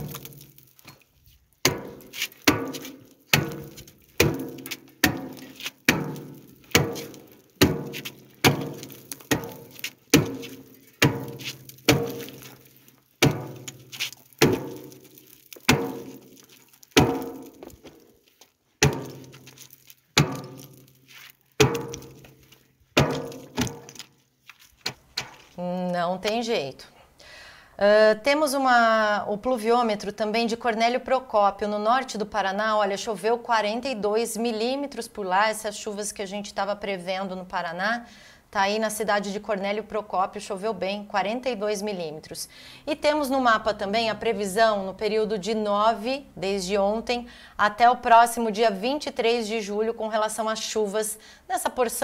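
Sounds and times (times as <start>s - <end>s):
axe chopping ice: 0.0s - 0.6s, 1.6s - 17.9s, 18.8s - 21.0s, 21.6s - 22.3s, 23.0s - 24.1s.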